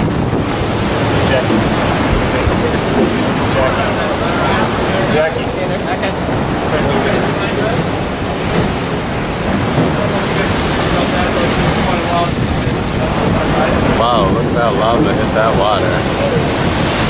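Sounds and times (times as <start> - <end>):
choppy sea rushing: 0.0 - 17.0
wind buffeting microphone: 0.0 - 17.0.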